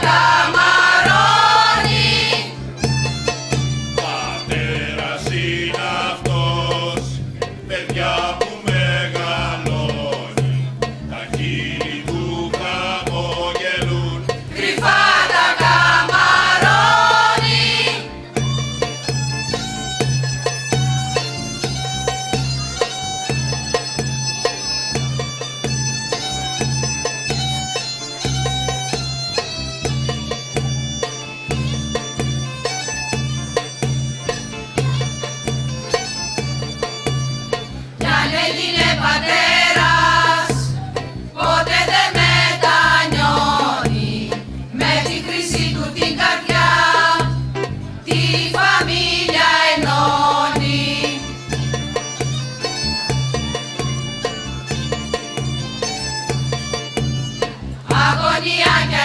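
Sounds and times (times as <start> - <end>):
mixed choir singing folk song: 0.0 - 2.7, 4.0 - 18.3, 38.0 - 51.5, 57.8 - 59.0
bagpipe drone and melody: 0.1 - 5.0, 50.0 - 57.8.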